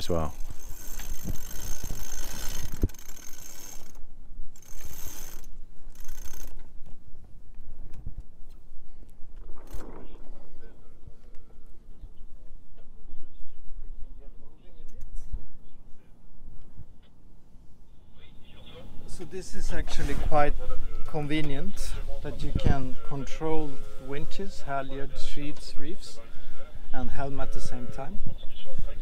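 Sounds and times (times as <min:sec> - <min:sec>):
rope rasping over winch: 0:00.0 - 0:06.9
winch clicking: 0:00.3 - 0:06.7.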